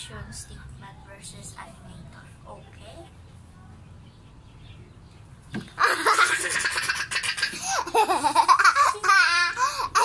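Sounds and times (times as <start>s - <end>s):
girl laughing hard: 5.8s - 10.0s.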